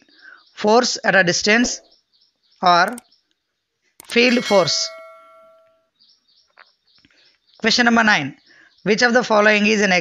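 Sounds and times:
bell-like chime: 4.0s - 5.8s
faint high chirps: 4.0s - 5.8s.

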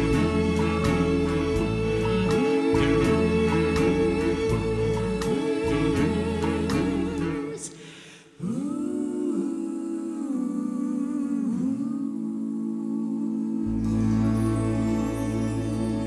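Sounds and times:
low orchestral strings: 0.0s - 7.6s, 13.4s - 16.0s
orchestral accompaniment: 0.0s - 7.6s, 13.7s - 16.0s
vocal group humming a chord: 0.0s - 16.0s.

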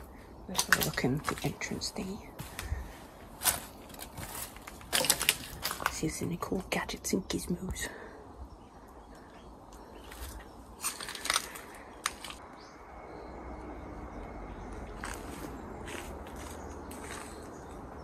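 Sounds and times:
footsteps crunching dry leaves: 0.6s - 6.1s, 10.0s - 12.4s, 14.8s - 17.8s.

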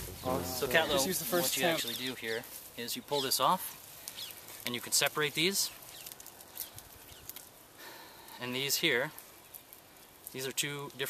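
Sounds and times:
grass rustling: 0.0s - 11.0s
roots tearing: 0.3s - 11.0s.

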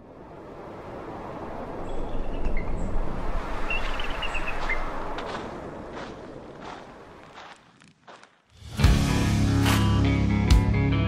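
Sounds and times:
small birds chirping: 1.8s - 3.0s, 3.6s - 4.9s.

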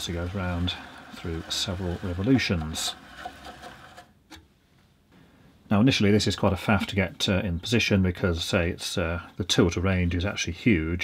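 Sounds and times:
bandsaw light mechanical rattle: 0.0s - 4.1s.

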